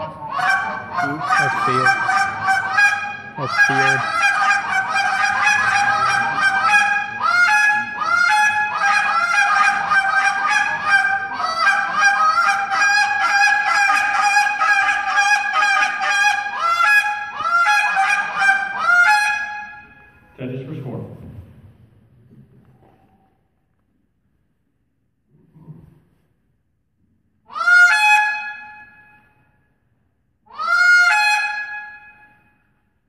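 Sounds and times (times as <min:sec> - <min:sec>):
goose call honks and clucks: 0:00.0 - 0:19.8, 0:27.5 - 0:28.8, 0:30.5 - 0:32.2.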